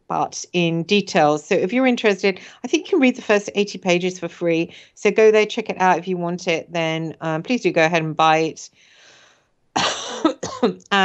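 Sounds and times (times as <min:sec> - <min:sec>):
woman speaking: 0:00.0 - 0:09.2, 0:09.8 - 0:11.0
faint breath: 0:08.7 - 0:09.5
woman coughing: 0:09.8 - 0:10.9.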